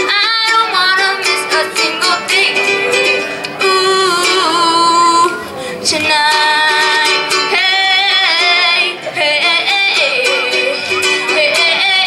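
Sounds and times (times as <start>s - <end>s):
child singing: 0.0s - 12.0s
strummed acoustic strings: 0.0s - 12.0s.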